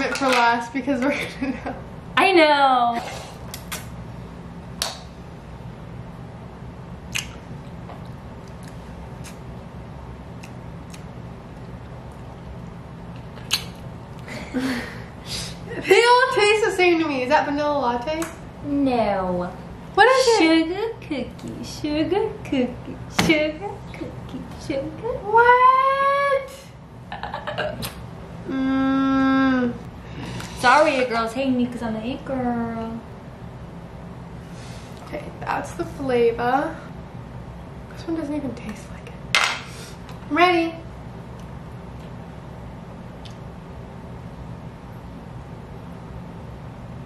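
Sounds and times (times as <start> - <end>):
low room hum: 0.0 - 47.0
wet lip smacks: 7.1 - 7.4, 13.3 - 13.8
woman laughing breathily: 14.3 - 15.1.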